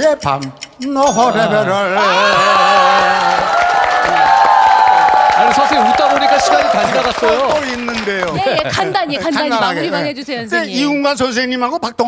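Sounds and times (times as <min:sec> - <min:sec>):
audience clapping and cheering: 0:02.0 - 0:09.1.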